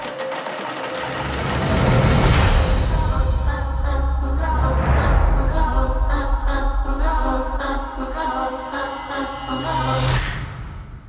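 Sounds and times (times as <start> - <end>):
trailer score music: 0.0 - 11.0.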